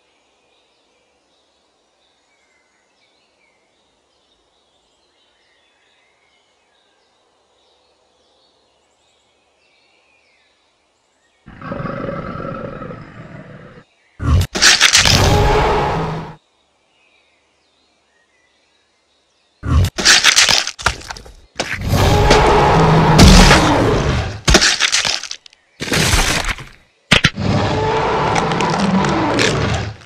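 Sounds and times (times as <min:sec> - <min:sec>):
sharp cracks: 0:14.4 - 0:15.8, 0:19.8 - 0:30.0
crunching breaking noise: 0:14.4 - 0:16.1, 0:19.8 - 0:30.0.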